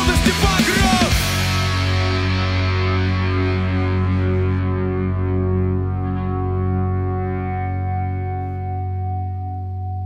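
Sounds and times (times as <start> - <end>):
electric guitars sustained chord: 0.0 - 10.0
low bass note: 1.4 - 10.0.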